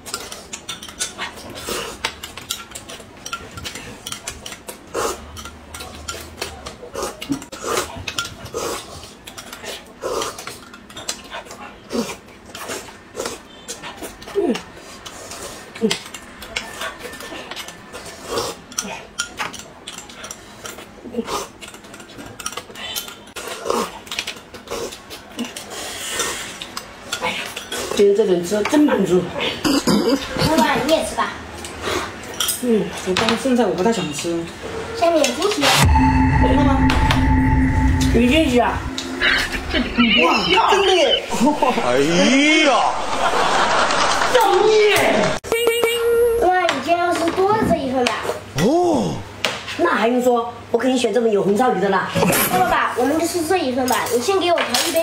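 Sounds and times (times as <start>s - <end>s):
people slurping and chewing: 0.0s - 28.1s.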